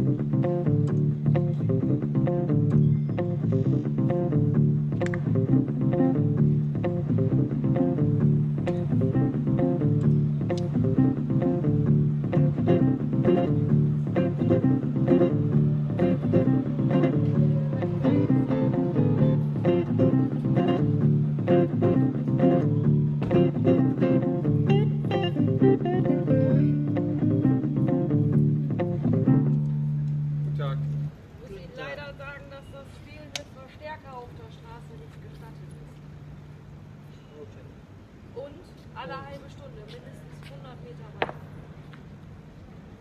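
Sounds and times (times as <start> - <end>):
blues electric guitar: 0.0 - 31.1
repeating low bass line: 0.0 - 31.1
steady beat: 4.3 - 30.5.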